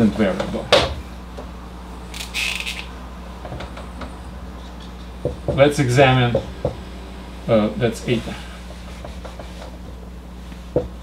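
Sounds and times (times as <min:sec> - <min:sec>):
marker squeaking on whiteboard: 0:02.2 - 0:02.9.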